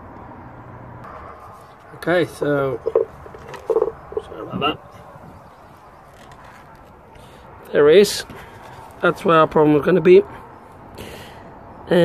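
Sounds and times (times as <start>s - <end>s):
man speaking: 2.0s - 3.1s, 3.7s - 4.8s.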